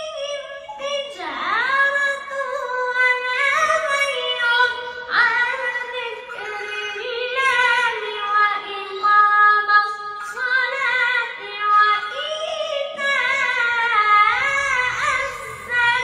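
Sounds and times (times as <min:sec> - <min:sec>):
boy reciting melodically: 0:00.0 - 0:16.0.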